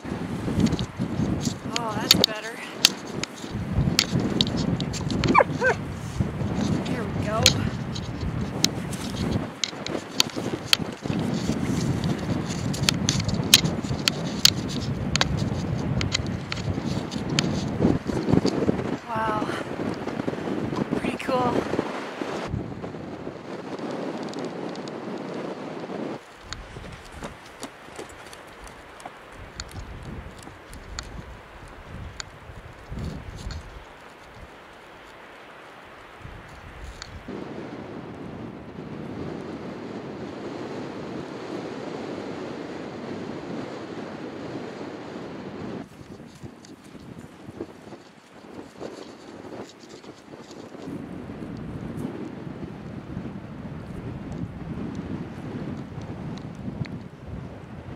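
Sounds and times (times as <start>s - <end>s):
wind buffeting microphone: 0.0s - 57.9s
faint clicks: 26.3s - 35.8s.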